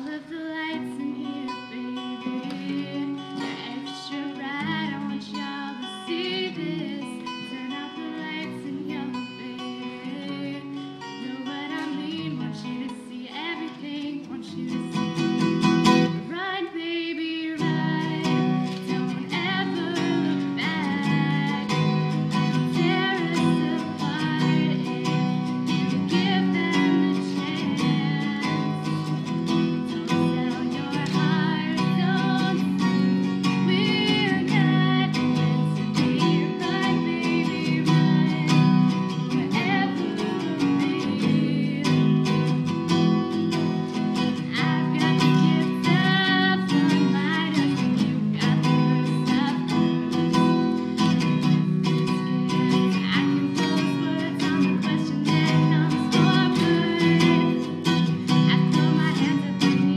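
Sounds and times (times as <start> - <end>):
acoustic guitar strumming: 0.0 - 59.9
woman singing: 0.0 - 59.9.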